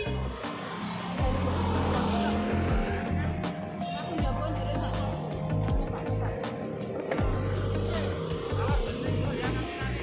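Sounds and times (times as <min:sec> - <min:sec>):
music with steady beat: 0:00.0 - 0:10.0
vehicle passing: 0:00.0 - 0:10.0.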